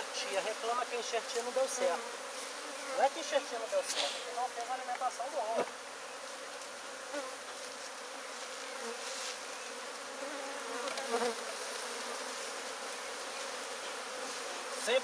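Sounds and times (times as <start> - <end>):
bees buzzing: 0.0 - 15.0.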